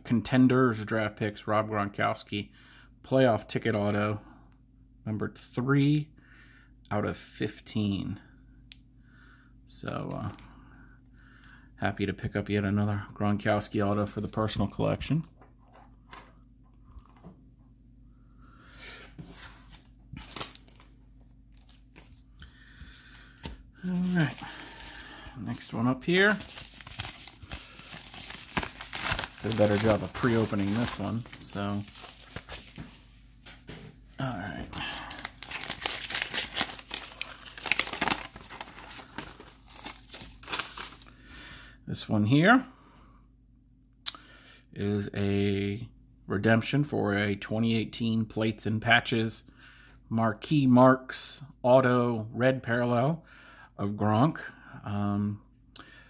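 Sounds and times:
paper and plastic rustling: 19.2s - 33.8s, 34.6s - 41.1s.

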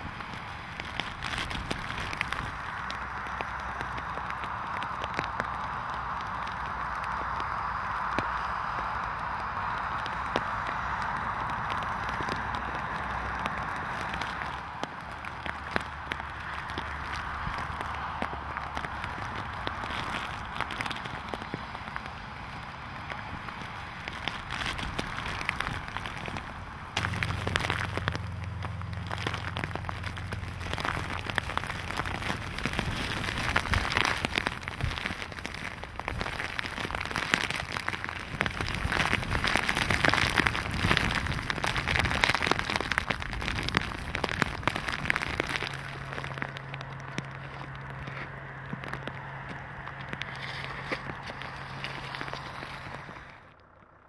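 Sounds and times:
rain pattering on glass: 0.0s - 53.9s
low steady hum: 0.0s - 54.0s.

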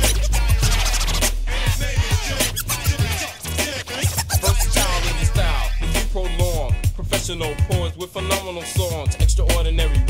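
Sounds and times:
turntable scratching: 0.0s - 7.3s
drum beat: 1.8s - 7.9s.

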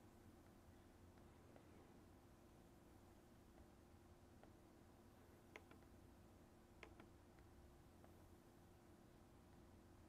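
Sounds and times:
faint steady hum: 0.0s - 10.0s
computer mouse clicks: 5.4s - 6.0s, 6.8s - 8.2s.

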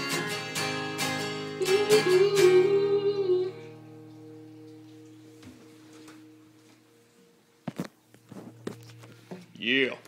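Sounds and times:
footsteps and knocks: 5.3s - 6.9s, 7.6s - 9.5s.

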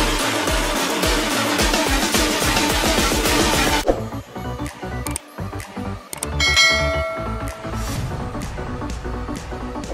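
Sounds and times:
electronic music: 0.0s - 9.9s
bell-like notification chime: 6.4s - 7.9s.

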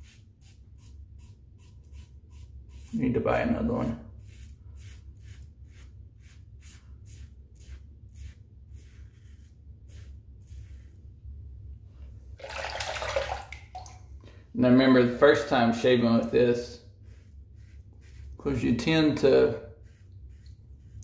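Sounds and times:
razor scraping stubble: 0.0s - 11.2s, 15.4s - 21.0s
running water: 12.4s - 14.2s.

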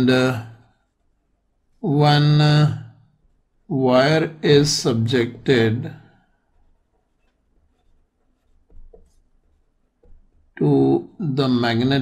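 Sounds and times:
pen scratching on paper: 6.5s - 10.4s.

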